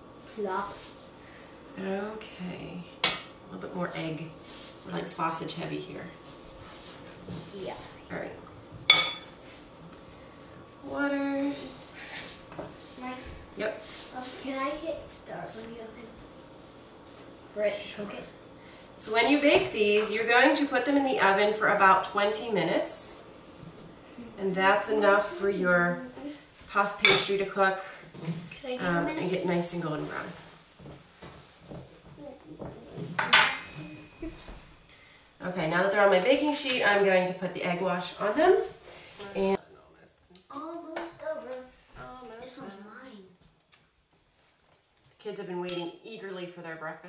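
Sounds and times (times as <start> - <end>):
metal spoon clinking dish: 45.7 - 46.0.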